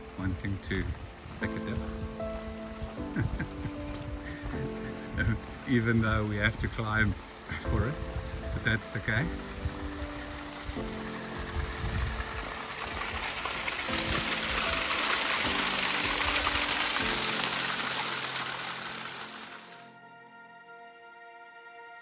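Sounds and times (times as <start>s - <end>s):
water splashing down a gully: 0.0s - 19.9s
background music with held notes: 0.0s - 22.0s.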